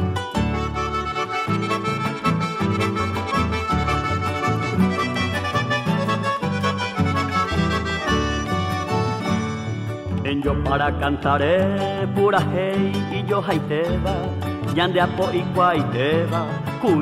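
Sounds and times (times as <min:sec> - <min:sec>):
accordion melody: 0:00.0 - 0:10.9
bouncing bass rhythm: 0:00.0 - 0:17.0.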